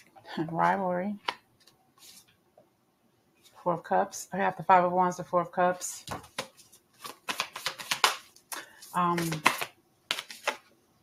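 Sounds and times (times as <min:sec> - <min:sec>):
cards being shuffled by hand: 0:06.1 - 0:10.7.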